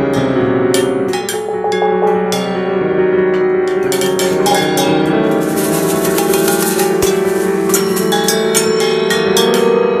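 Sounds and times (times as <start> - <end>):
small gongs and cymbals ringing: 0.0 - 10.0
sustained piano notes: 0.0 - 10.0.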